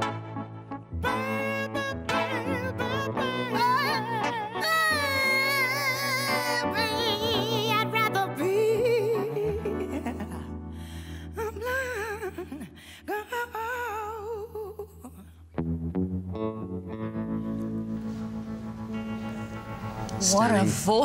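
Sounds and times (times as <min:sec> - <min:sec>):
keyboard and guitar chords: 0:00.0 - 0:11.4, 0:15.6 - 0:21.0
woman singing with vibrato: 0:01.0 - 0:10.6, 0:11.3 - 0:15.4.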